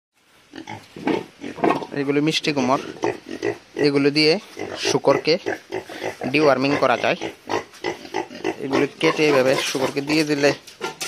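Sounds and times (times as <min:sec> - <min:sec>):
pigs grunting: 0:02.6 - 0:11.0.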